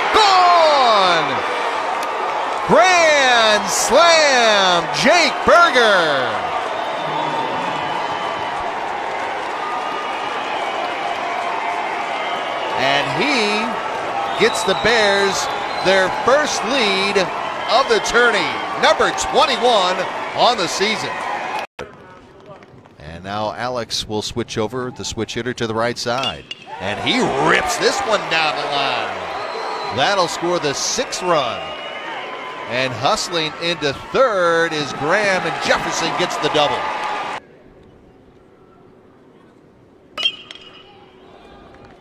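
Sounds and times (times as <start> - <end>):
crowd cheering and clapping: 0.0 - 21.7, 26.7 - 37.4
faint ballpark ambience: 0.0 - 42.0
metal bat hitting ball: 40.2 - 41.0.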